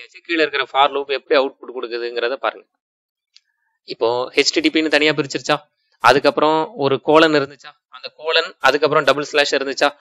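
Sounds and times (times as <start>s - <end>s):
man speaking: 0.0s - 2.8s, 3.8s - 10.0s.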